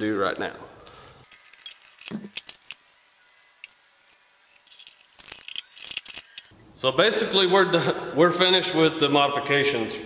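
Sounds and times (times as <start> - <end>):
metal clicks and rattles: 1.3 - 2.8, 4.5 - 6.5.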